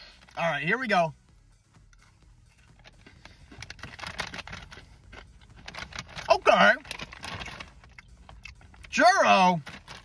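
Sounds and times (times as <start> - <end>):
pretzel crunching while chewed: 2.6 - 8.9.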